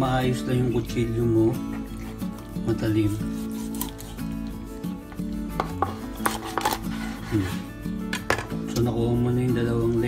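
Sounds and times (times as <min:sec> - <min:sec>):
knife cutting raw chicken: 0:02.0 - 0:04.4, 0:05.6 - 0:07.7
knife knocking on cutting board: 0:08.1 - 0:08.5.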